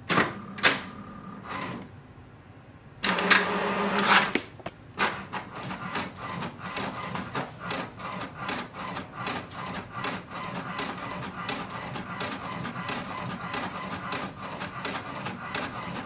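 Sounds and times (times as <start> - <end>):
paper feeding through printer: 1.4 - 1.8, 5.0 - 16.0.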